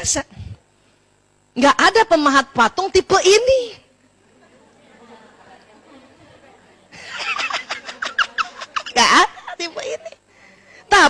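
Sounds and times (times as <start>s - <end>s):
woman talking and laughing: 3.4s - 10.3s.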